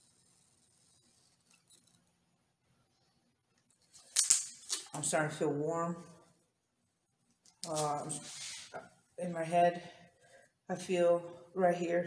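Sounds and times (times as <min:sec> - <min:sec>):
duct tape ripping: 0:03.9 - 0:05.0, 0:07.5 - 0:08.0.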